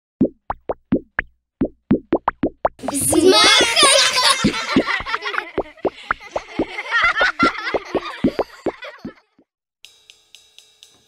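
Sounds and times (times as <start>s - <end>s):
cartoon plop sound effects: 0.2s - 6.7s, 7.4s - 9.2s.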